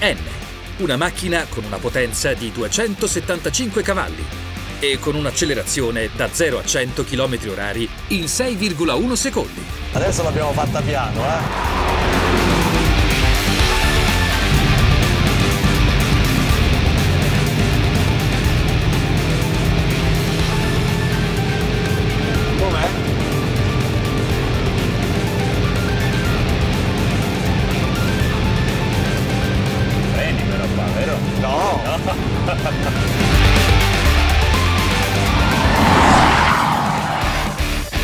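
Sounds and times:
background music: 0:00.0 - 0:38.0.

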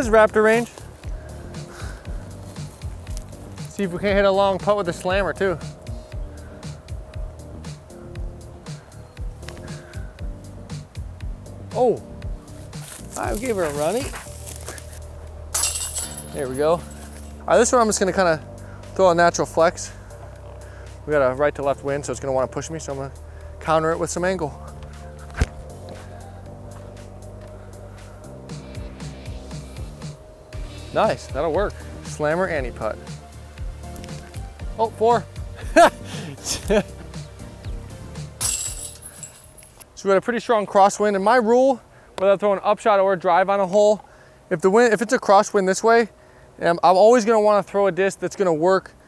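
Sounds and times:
chains jangling: 0:15.5 - 0:17.4, 0:38.4 - 0:39.8
disc striking metal chains: 0:15.5 - 0:17.4, 0:38.4 - 0:39.8.

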